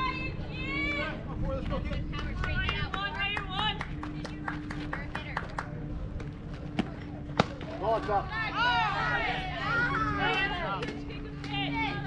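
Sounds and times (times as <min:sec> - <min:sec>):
voices shouting: 0:00.0 - 0:01.4, 0:07.7 - 0:12.0.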